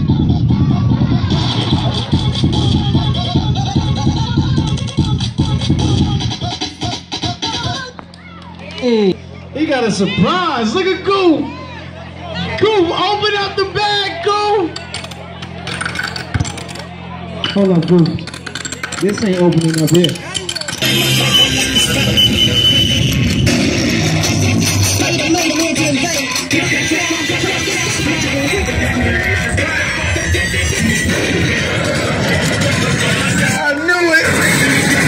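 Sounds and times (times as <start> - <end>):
crowd chatter: 0.0 - 35.0
clicking and rattling: 14.8 - 20.8
loud music with guitar: 20.8 - 33.6.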